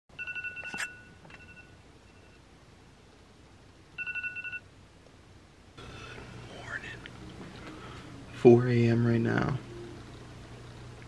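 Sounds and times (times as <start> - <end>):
phone alarm tone pulsing: 4.0 - 4.6.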